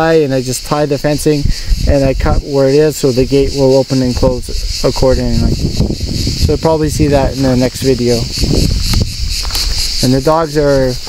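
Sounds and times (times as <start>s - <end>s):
insect chorus chirring: 0.0s - 11.0s.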